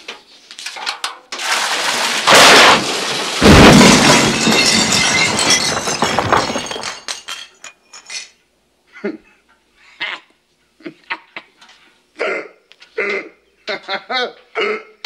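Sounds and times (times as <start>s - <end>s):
debris and water clattering: 1.0s - 7.5s
floor and ceiling collapsing: 1.4s - 7.1s.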